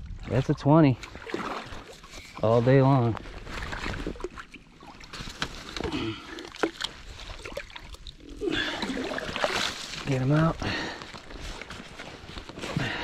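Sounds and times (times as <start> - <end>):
shallow water sloshing and splashing: 0.0 - 13.0.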